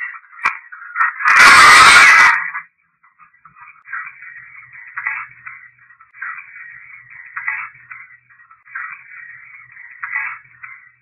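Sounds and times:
hiss and crackle from small speaker: 0:00.0 - 0:11.0
burst of harsh noise: 0:01.1 - 0:02.6.

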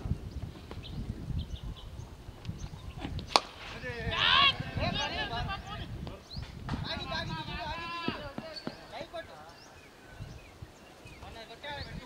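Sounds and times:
distant voices calling and talking: 0:00.8 - 0:12.0.

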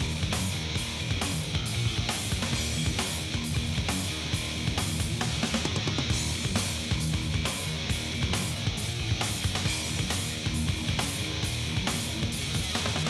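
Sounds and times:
heavy metal band playing: 0:00.0 - 0:13.0.

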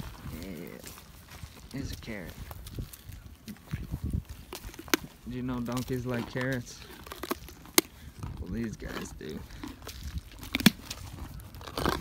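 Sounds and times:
donkey crunching carrot: 0:00.0 - 0:12.0
carrot snapping: 0:09.8 - 0:11.0.

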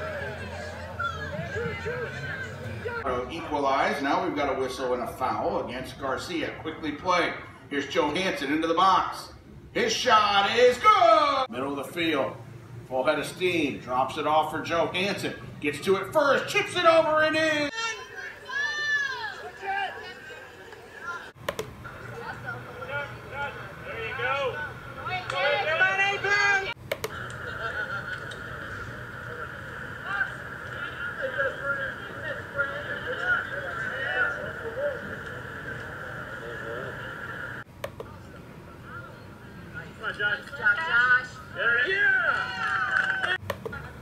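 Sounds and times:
people shouting: 0:00.0 - 0:03.0, 0:17.7 - 0:20.5, 0:22.8 - 0:26.8
hubbub of overlapping voices: 0:00.0 - 0:10.1, 0:13.8 - 0:44.0.

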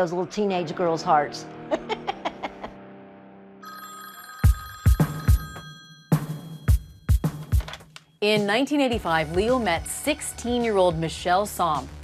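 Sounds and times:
landline telephone ringing: 0:03.6 - 0:07.8.

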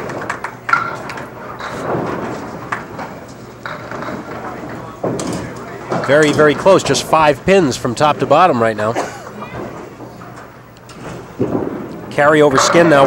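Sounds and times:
sharp knocks of bowling pins: 0:00.0 - 0:08.5, 0:09.5 - 0:13.0
background chatter: 0:03.3 - 0:10.7.

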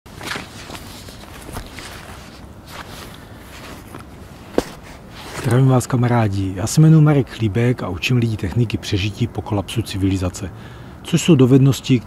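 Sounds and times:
rustling crunches: 0:00.1 - 0:05.8
low background noise: 0:00.1 - 0:12.0.

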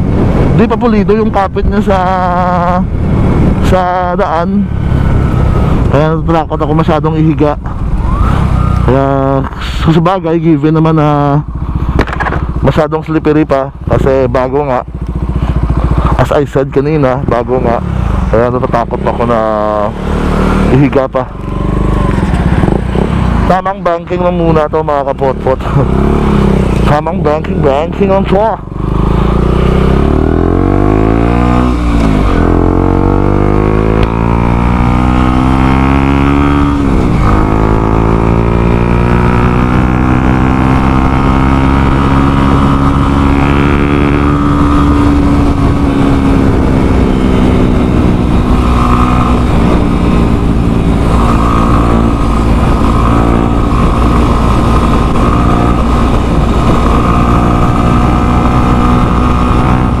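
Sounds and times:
motorcycle engine accelerating: 0:00.0 - 1:00.0.

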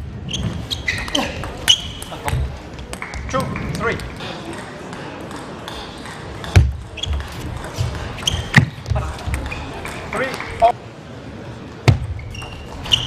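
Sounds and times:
voices in a hall: 0:00.0 - 0:13.0.

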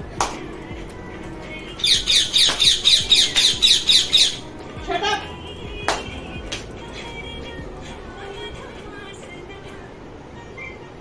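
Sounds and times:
parrot squawking: 0:01.8 - 0:05.3.

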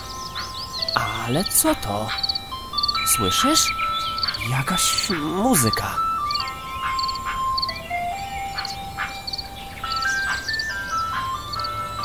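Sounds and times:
ice cream van chime melody: 0:00.0 - 0:12.0.

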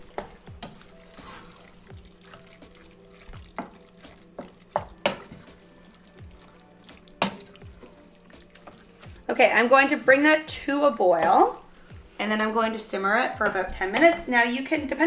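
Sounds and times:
wooden spoon stirring thick sauce: 0:00.0 - 0:12.2
spoon knocking against pot: 0:07.2 - 0:07.6.

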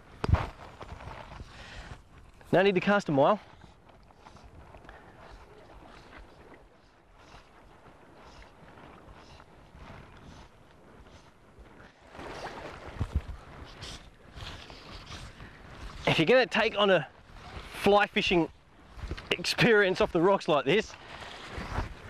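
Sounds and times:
wind on microphone: 0:00.0 - 0:02.3, 0:03.4 - 0:17.8, 0:18.4 - 0:19.4, 0:21.1 - 0:22.0
water lapping against rocks: 0:00.0 - 0:22.0.

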